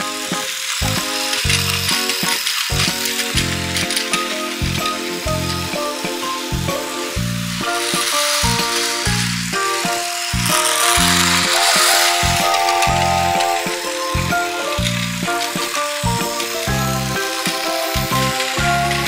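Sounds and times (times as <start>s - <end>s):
toy trains rattling on plastic track: 0.0s - 13.6s, 14.6s - 19.0s.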